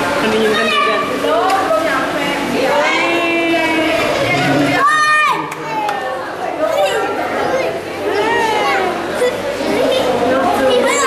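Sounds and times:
overlapping voices chatter: 0.0 - 11.0.

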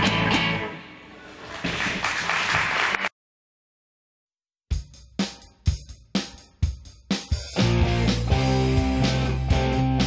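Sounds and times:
rock band guitar and drums: 0.0 - 0.9, 4.7 - 10.0
audience applauding: 1.4 - 3.2.

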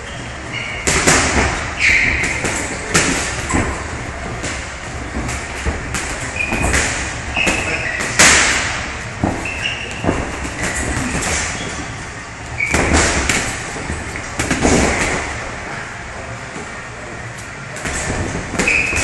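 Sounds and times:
sneakers squeaking on canvas: 0.0 - 4.0, 6.2 - 8.4, 9.2 - 13.3, 17.9 - 19.0
low rumble of gym noise: 0.0 - 19.0.

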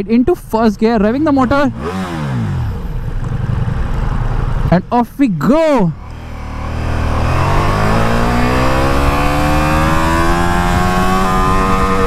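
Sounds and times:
motorcycle engine idling: 1.0 - 4.7.

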